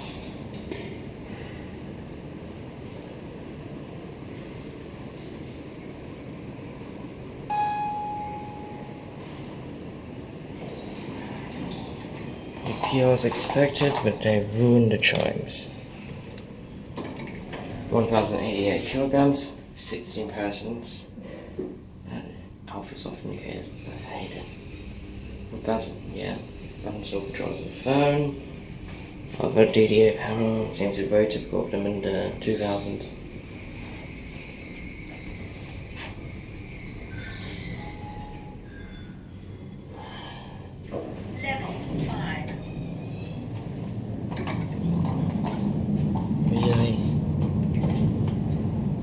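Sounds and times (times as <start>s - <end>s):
elevator low hum: 0.0s - 12.8s, 35.1s - 49.0s
faint high whine: 7.5s - 9.4s.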